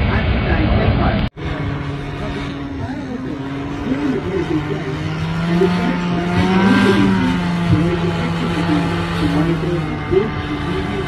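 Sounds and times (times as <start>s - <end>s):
paraglider engine running: 0.1s - 11.0s.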